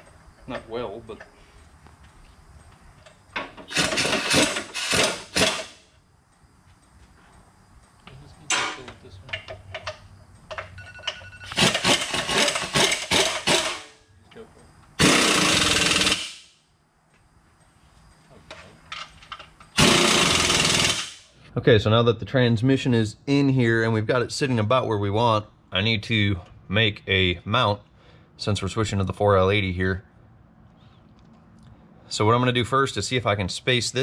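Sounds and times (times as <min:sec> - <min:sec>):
impact wrench hammering: 0:03.6 - 0:05.8, 0:11.5 - 0:13.9, 0:15.0 - 0:16.5, 0:19.8 - 0:21.2.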